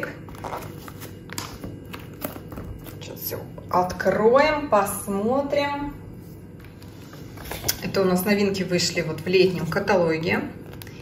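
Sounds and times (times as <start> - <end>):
woman speaking: 0.0 - 0.3, 3.0 - 6.1, 7.7 - 10.6.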